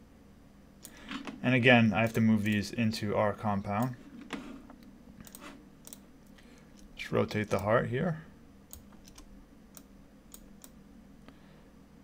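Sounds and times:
mouse and keyboard clicks: 0:05.2 - 0:06.0.

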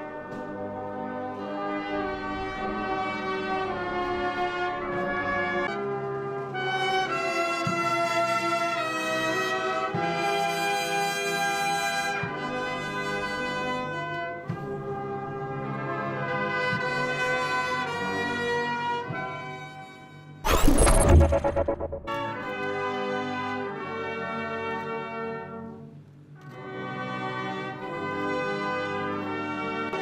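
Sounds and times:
electronic sweep: 0:20.5 - 0:22.3.

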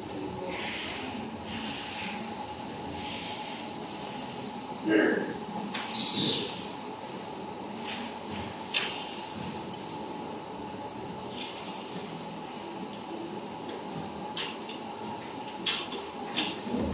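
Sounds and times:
faint constant hum: 0:00.0 - 0:16.9.

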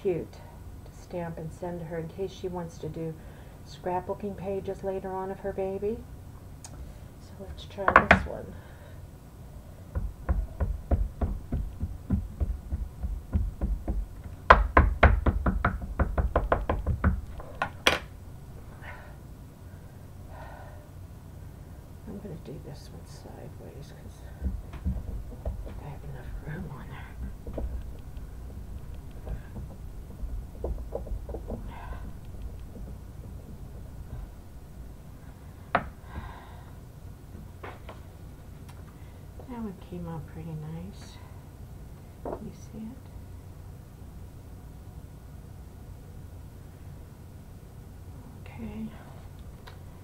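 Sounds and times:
rubber stamp knocking on paper: 0:10.0 - 0:18.1, 0:24.4 - 0:34.2
rubber stamp tapping ink pad: 0:10.0 - 0:18.1.

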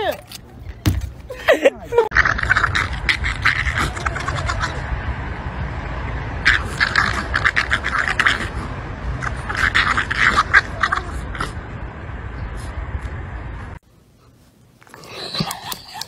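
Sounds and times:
dogs grunting: 0:02.1 - 0:04.8, 0:06.4 - 0:11.8, 0:14.9 - 0:16.0.

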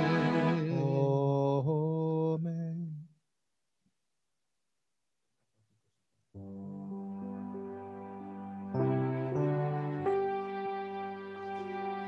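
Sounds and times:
cantor chanting: 0:00.0 - 0:01.9.

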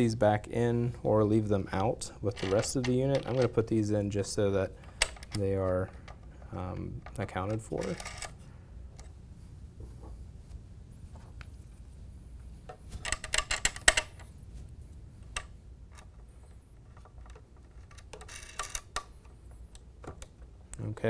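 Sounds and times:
thumb screws clicking and rattling: 0:02.3 - 0:03.6, 0:04.8 - 0:08.4, 0:13.0 - 0:14.3, 0:16.8 - 0:20.3.

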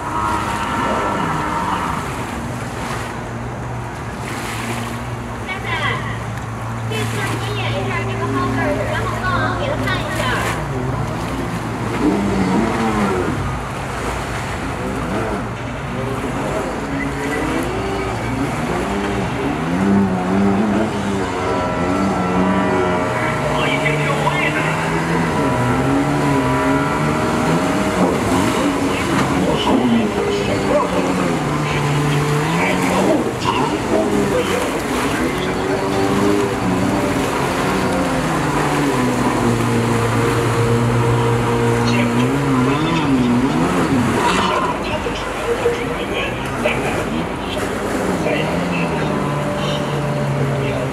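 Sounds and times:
jet ski engine revving: 0:00.0 - 0:50.9.

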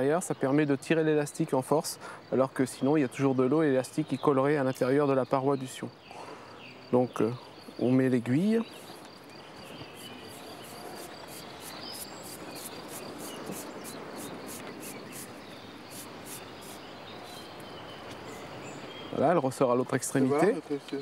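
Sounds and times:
insects chirping: 0:00.0 - 0:21.0
steady outdoor hiss: 0:00.0 - 0:21.0.

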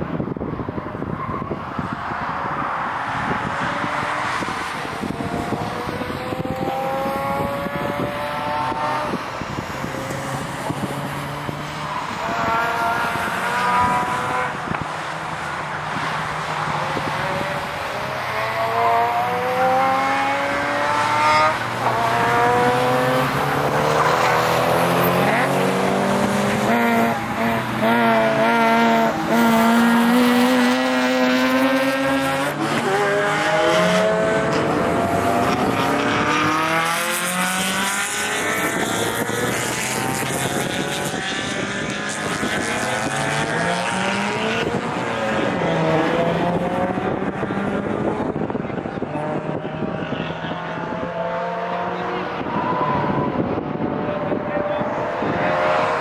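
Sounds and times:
car engines revving: 0:00.0 - 0:56.0.

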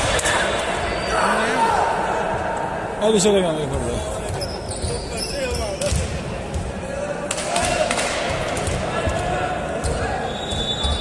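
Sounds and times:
voices in hall: 0:00.0 - 0:11.0.

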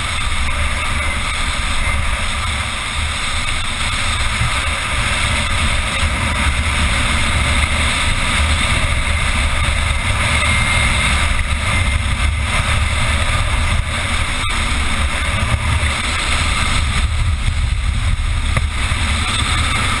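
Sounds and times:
wheels rumbling on hard ground: 0:00.0 - 0:20.0
wind buffeting microphone: 0:00.0 - 0:20.0.

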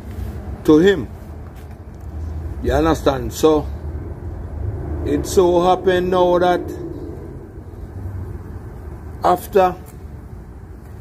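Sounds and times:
low background rumble: 0:01.9 - 0:09.4.

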